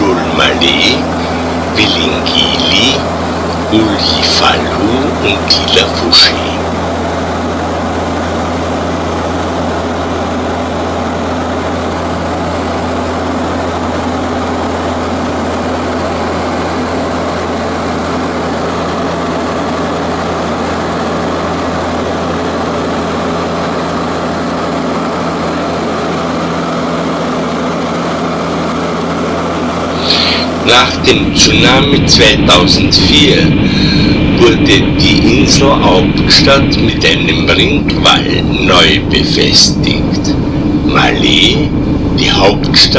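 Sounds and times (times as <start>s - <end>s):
propeller engines droning: 0.0s - 42.9s.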